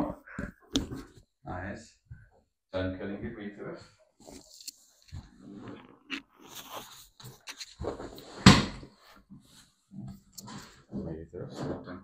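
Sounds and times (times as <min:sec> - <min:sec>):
rustling on padded table: 0:04.2 - 0:10.7.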